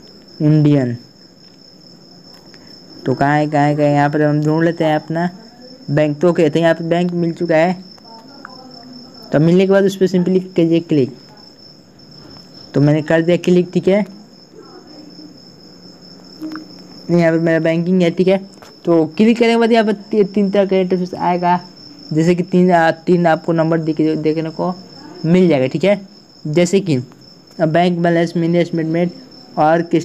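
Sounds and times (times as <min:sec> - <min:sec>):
faint low hum: 0:00.0 - 0:30.0.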